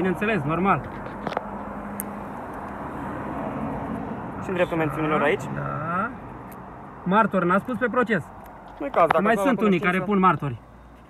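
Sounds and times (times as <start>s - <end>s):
traffic: 0.0s - 11.0s.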